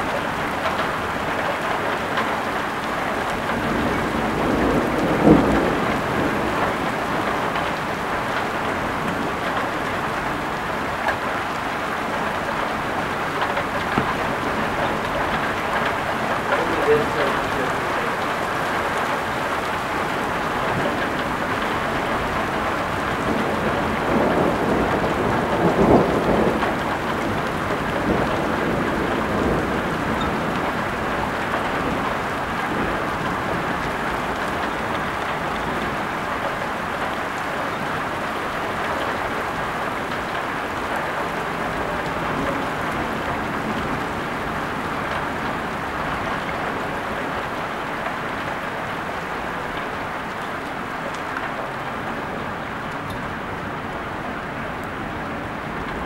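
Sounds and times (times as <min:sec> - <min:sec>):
heavy rain pouring: 0:00.0 - 0:56.0
thunder rolling: 0:03.3 - 0:10.8, 0:12.8 - 0:36.0.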